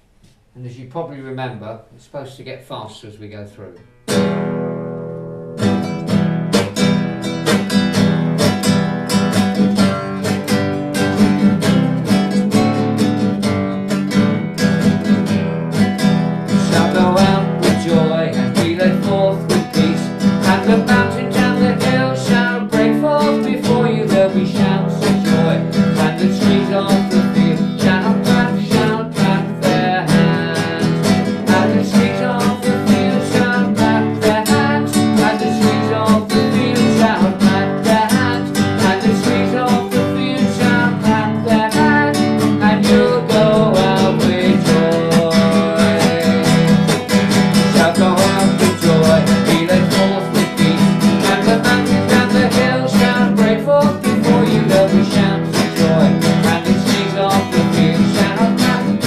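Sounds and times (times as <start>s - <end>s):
acoustic guitar strumming: 3.3s - 59.0s
man singing: 16.5s - 59.0s.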